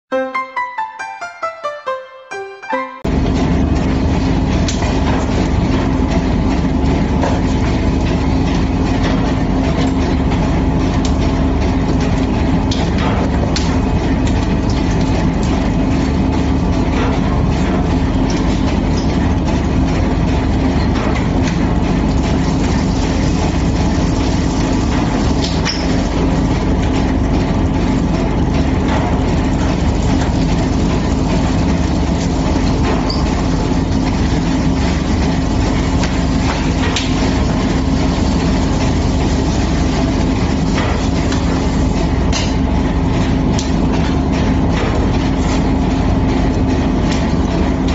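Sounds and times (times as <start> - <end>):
mixing mill mechanical drone: 3.0 - 47.9.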